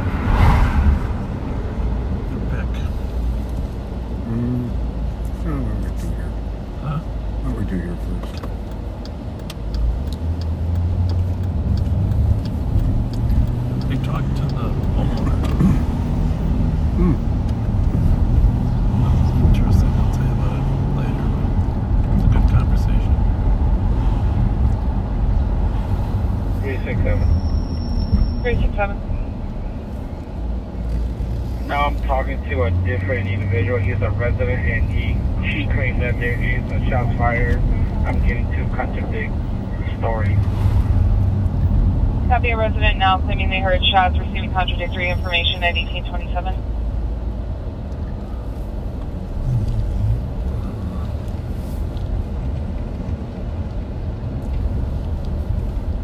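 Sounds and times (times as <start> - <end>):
car engine and road drone: 0.0 - 56.0.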